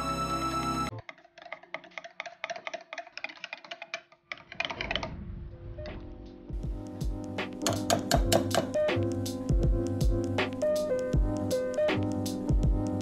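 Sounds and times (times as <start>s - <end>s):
background music: 0.0s - 1.0s, 4.9s - 13.0s
whisk clicking against glass jug: 1.0s - 4.9s, 7.6s - 8.8s.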